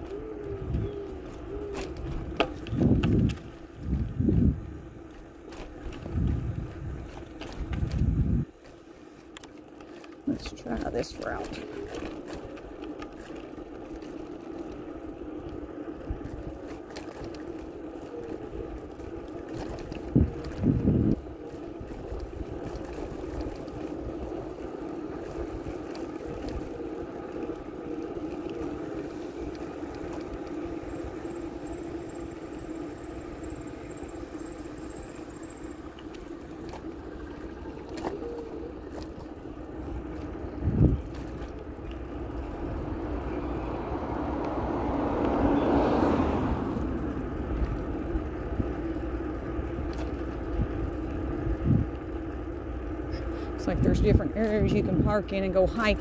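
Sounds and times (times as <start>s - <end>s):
bicycle tyre and wind rush: 0.0s - 56.0s.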